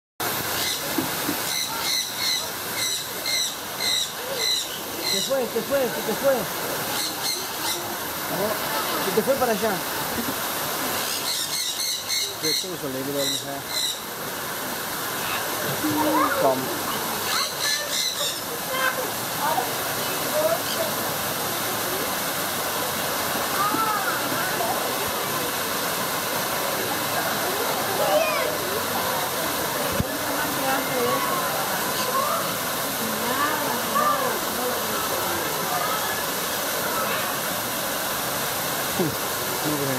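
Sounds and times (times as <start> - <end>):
falling water rushing: 0.2 - 39.9
steady background hiss: 0.2 - 39.9.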